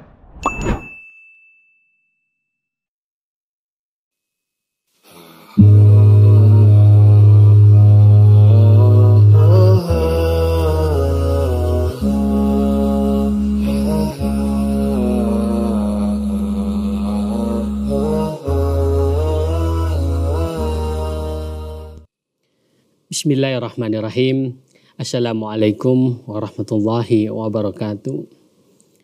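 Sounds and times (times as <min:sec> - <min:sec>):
chant-like melody: 0:05.6 - 0:22.1
low drone: 0:05.6 - 0:22.1.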